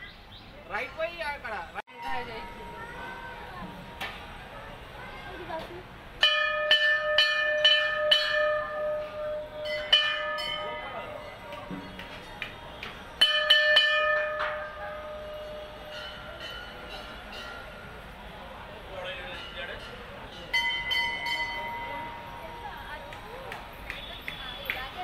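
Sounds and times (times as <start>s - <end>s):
brass bell ringing: 6.2s - 11.4s, 13.2s - 18.1s.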